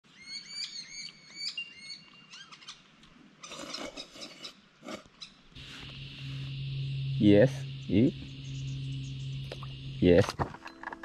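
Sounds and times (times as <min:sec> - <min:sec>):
birds chirping: 0:00.1 - 0:11.0
low steady hum: 0:04.8 - 0:11.0.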